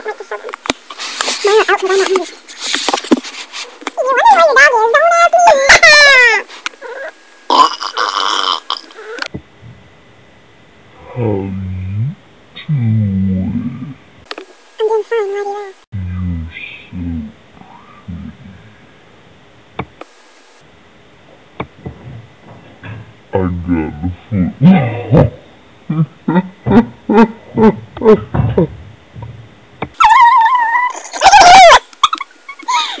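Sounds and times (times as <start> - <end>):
high-pitched voice squealing: 4.0 - 9.3, 30.0 - 33.0
person burping loudly: 7.5 - 9.0, 23.6 - 28.8
short yelps: 30.0 - 33.0.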